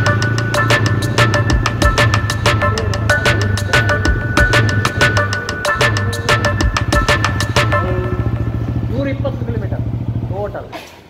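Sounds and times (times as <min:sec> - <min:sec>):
music with drumbeat: 0:00.0 - 0:08.8
motorcycle engine idling: 0:00.0 - 0:11.0.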